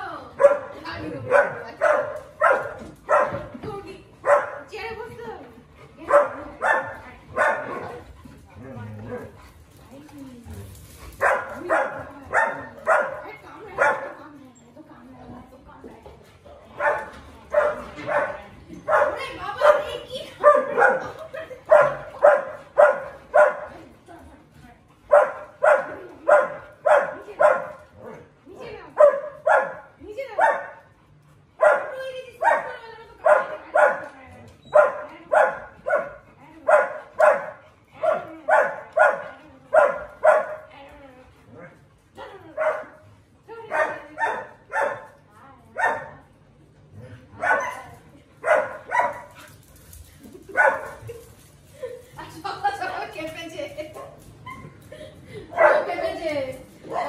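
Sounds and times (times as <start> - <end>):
dogs barking: 0.4 - 3.5, 4.2 - 4.7, 6.0 - 9.4, 11.2 - 14.3, 16.8 - 23.8, 25.1 - 30.9, 31.5 - 34.1, 34.7 - 40.7, 42.5 - 43.0, 43.6 - 45.2, 45.8 - 46.2, 47.4 - 49.5, 50.4 - 51.2, 55.5 - 56.1.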